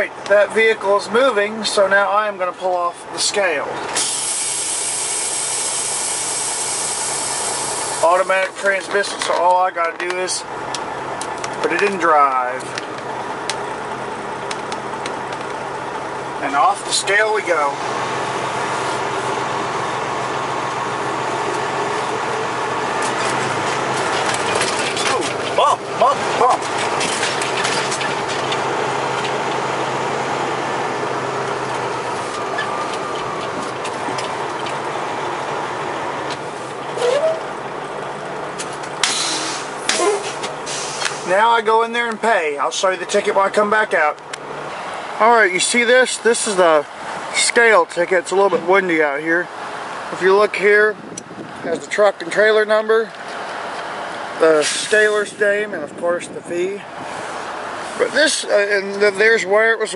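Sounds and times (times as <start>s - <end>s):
diesel engine idling: 0.0s - 59.9s
truck cab rumbling: 0.0s - 59.9s.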